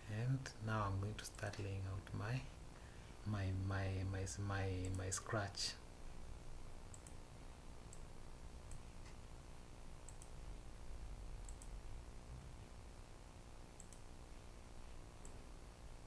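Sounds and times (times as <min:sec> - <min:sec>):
low steady hum: 0:00.0 - 0:16.0
computer mouse clicks: 0:04.8 - 0:05.0, 0:06.9 - 0:07.2, 0:07.9 - 0:08.1, 0:10.0 - 0:10.4, 0:11.4 - 0:11.8, 0:13.8 - 0:14.1, 0:15.2 - 0:15.4.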